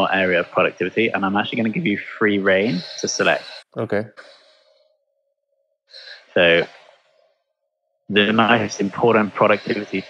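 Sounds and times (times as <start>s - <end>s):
man speaking: 0.0s - 4.1s, 6.4s - 6.7s, 8.1s - 10.0s.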